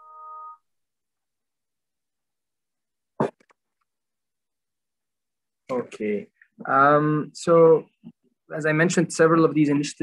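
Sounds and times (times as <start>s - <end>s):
electronic chime chord: 0.0s - 0.6s.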